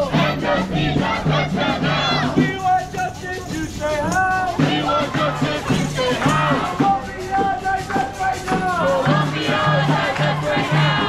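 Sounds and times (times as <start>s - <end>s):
crowd chanting: 0.0s - 11.0s.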